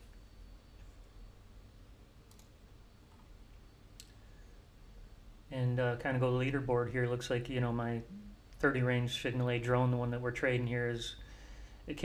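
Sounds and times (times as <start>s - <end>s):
computer mouse clicks: 2.3s - 3.3s.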